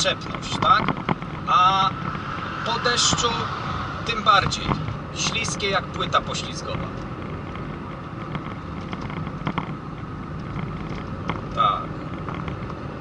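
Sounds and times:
vehicle driving rumble: 0.0s - 13.0s.

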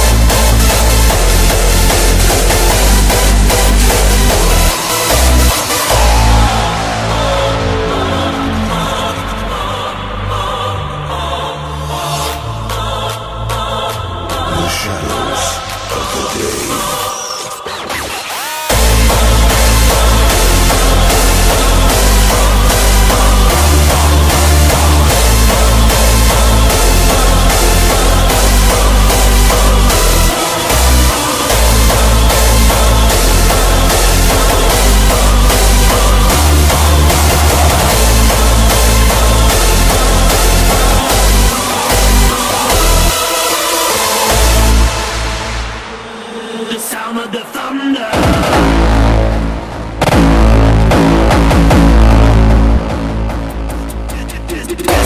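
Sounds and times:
heavy kick drum and bass: 0.0s - 7.9s, 18.7s - 43.4s, 48.1s - 55.0s
hardstyle dance music: 0.0s - 55.0s.

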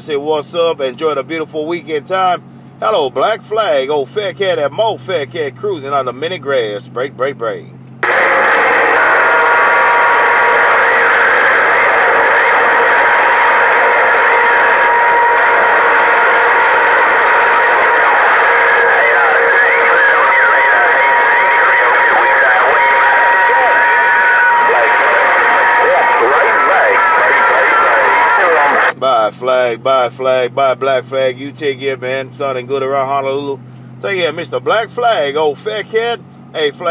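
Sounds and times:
garbled radio voices: 7.4s - 33.4s
radio static hiss: 8.0s - 28.9s.

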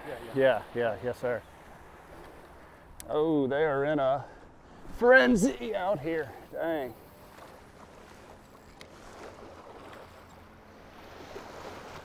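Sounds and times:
small waves washing at shore: 0.0s - 12.0s.

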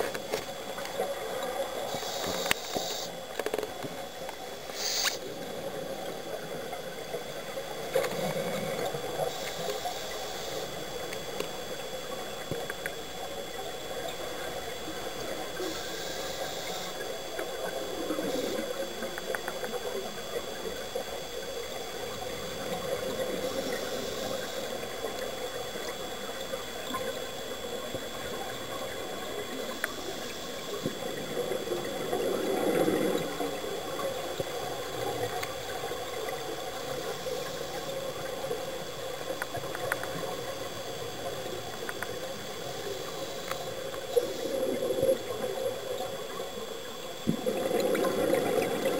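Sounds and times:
steady underwater hum: 0.0s - 48.9s
regulator hissing: 1.9s - 3.2s, 4.5s - 5.3s, 9.2s - 11.8s, 14.2s - 20.7s, 21.8s - 31.7s, 39.5s - 47.2s
exhaled bubbles burbling: 5.2s - 48.9s.

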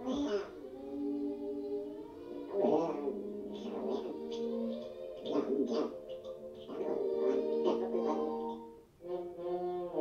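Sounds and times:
choir-like singing music: 0.0s - 10.0s.

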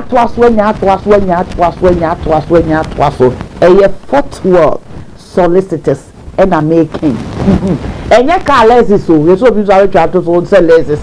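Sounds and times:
woman laughing loudly: 7.4s - 7.9s.

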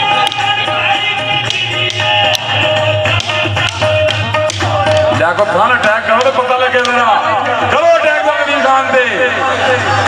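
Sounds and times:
held melody line: 0.0s - 8.3s.

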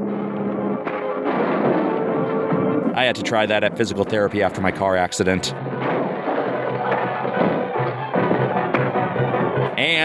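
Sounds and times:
dramatic film score music: 0.0s - 10.0s
sharp knocks of blows: 5.6s - 9.7s.

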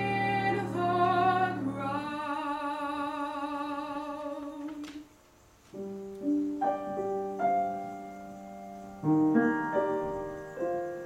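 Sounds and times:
woman singing with vibrato: 0.0s - 5.1s
piano chords: 0.0s - 11.0s.

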